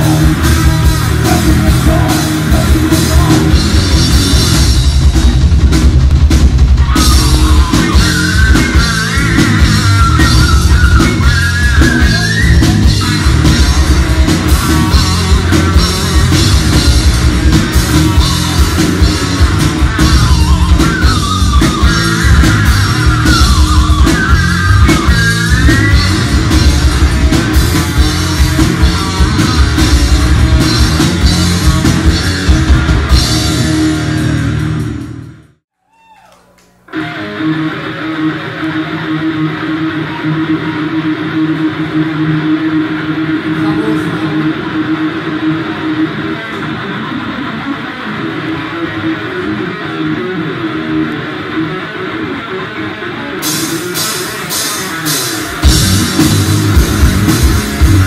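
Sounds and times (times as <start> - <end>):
distorted electric guitar: 0.0 - 35.6, 36.4 - 58.0
pounding drum kit: 0.0 - 35.6, 53.4 - 58.0
bass: 0.0 - 58.0
steady held tones: 53.3 - 58.0.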